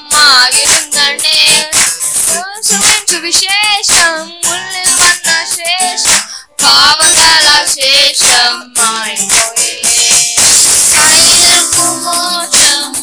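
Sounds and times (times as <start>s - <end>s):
boys singing: 0.0s - 13.0s
keyboard chords over a beat: 0.0s - 13.0s.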